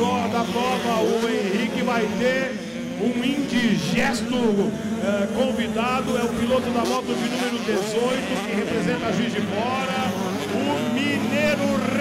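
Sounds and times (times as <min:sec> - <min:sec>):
commentator's voice: 0:00.0 - 0:12.0
motocross bikes revving: 0:00.0 - 0:12.0.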